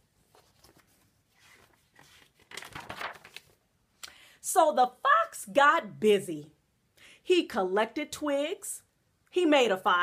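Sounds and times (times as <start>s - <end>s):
paper rustling: 0.0s - 3.6s.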